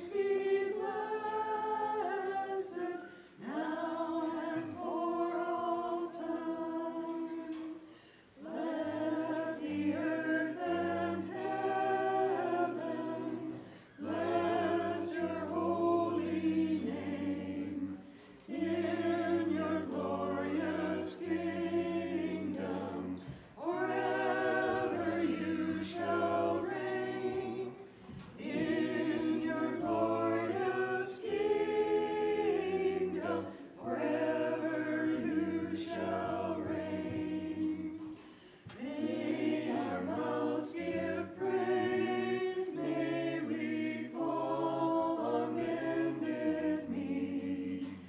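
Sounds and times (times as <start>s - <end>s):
voices singing a cappella chant: 0.0s - 48.0s.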